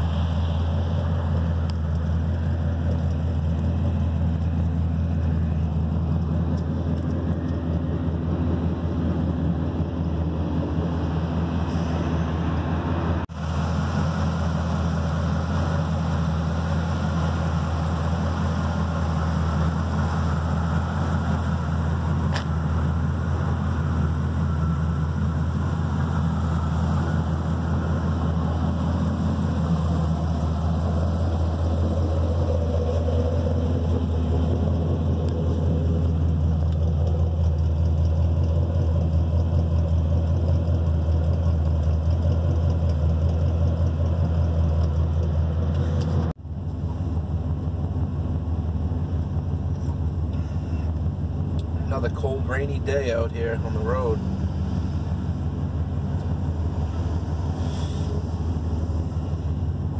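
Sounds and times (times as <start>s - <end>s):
pickup truck engine idling: 0.0s - 59.9s.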